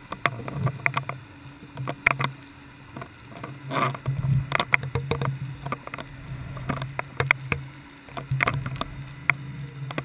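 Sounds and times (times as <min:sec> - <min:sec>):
sharp clicks and knocks: 0:00.0 - 0:10.0
steady low underwater hum: 0:00.0 - 0:10.0.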